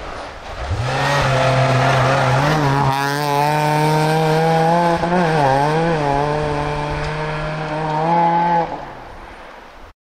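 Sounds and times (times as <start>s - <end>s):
rally car engine at high revs: 0.4s - 9.0s.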